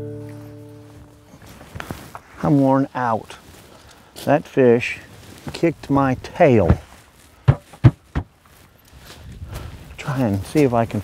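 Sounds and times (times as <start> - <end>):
low rustle: 0.1 - 7.4, 8.3 - 11.0.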